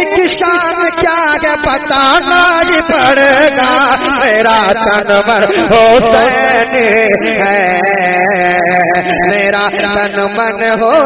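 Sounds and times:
man singing unaccompanied: 0.0 - 11.0.

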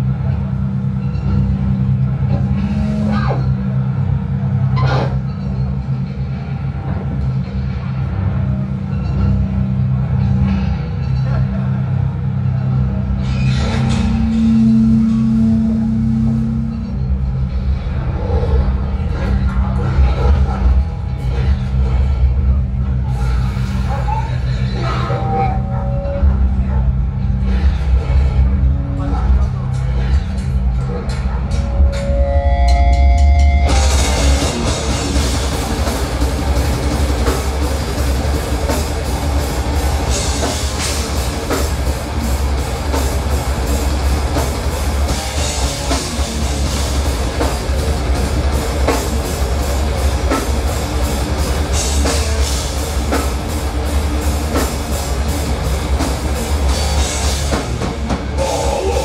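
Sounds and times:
heavy band playing live: 0.0 - 59.0
cymbal crash: 13.2 - 17.7.

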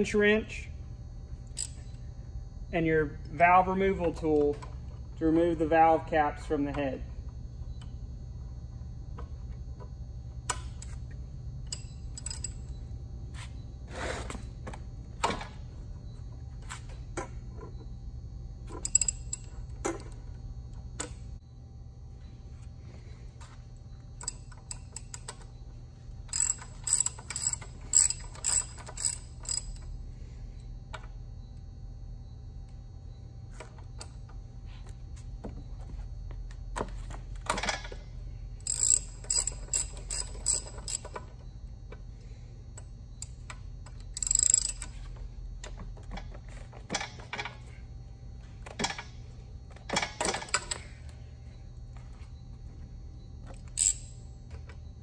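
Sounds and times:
ratchet wrench clicking: 1.5 - 1.8, 11.7 - 12.7, 18.8 - 19.5, 26.3 - 29.9, 38.6 - 41.2, 43.2 - 45.1, 53.6 - 54.2.

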